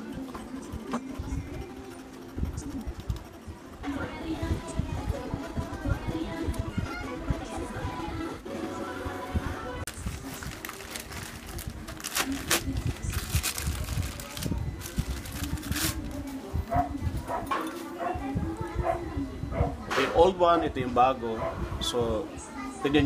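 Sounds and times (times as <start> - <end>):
plastic bag crinkling: 9.9 - 16.3.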